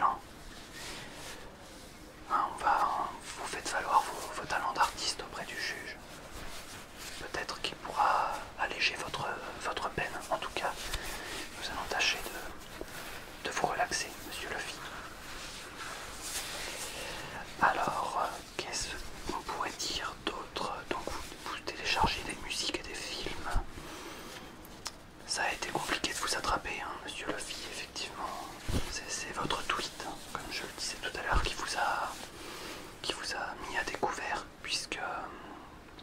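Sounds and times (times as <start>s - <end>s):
man whispering: 0.0s - 23.8s, 24.8s - 32.3s, 32.9s - 35.8s.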